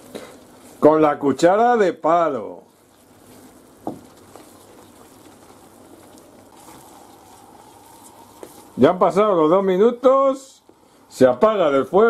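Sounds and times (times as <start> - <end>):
sauce simmering with bubbling hiss: 0.0 - 12.0.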